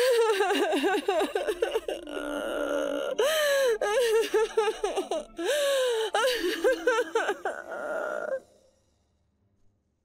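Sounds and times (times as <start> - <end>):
woman sobbing: 0.0 - 8.4.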